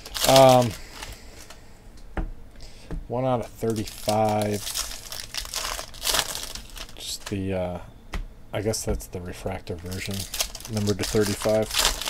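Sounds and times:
foil wrapper crinkling: 0.0s - 1.6s, 3.6s - 7.4s, 9.5s - 12.0s.

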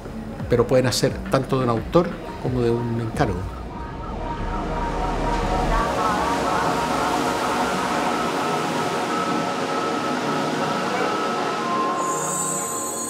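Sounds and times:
background music: 0.0s - 13.0s
train rumbling: 1.2s - 11.9s.

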